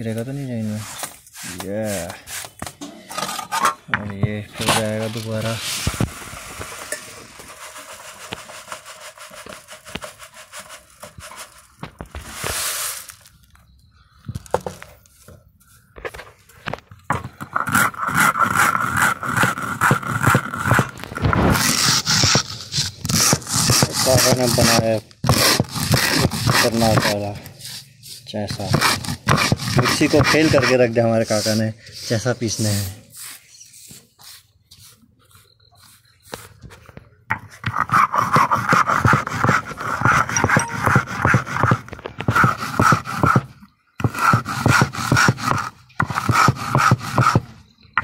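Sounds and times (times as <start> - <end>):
grinding stone scraping slab: 17.4 - 27.2, 37.3 - 43.4
stone grinding on stone slab: 37.3 - 47.4.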